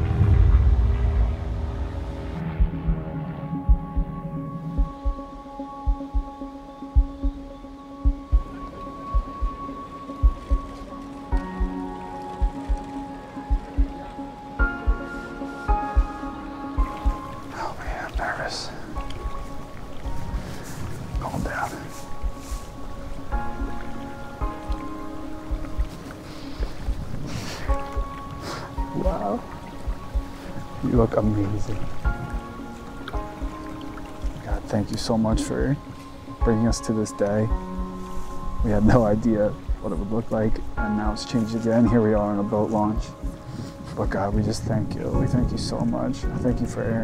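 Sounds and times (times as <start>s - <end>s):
soft low beat: 0.0s - 35.8s, 37.4s - 46.7s
sustained chords: 0.0s - 43.4s
wind buffeting microphone: 16.8s - 36.8s.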